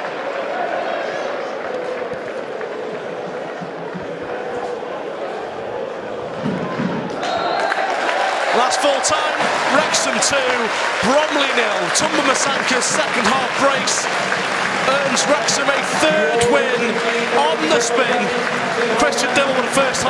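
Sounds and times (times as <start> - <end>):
crowd shouting and cheering: 0.0 - 20.0
stadium crowd hubbub: 0.0 - 20.0.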